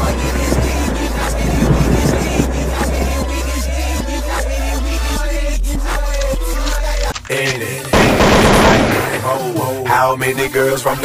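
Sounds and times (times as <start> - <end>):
rapping over a beat: 0.0 - 11.0
machine-gun gunfire effect: 8.0 - 9.4.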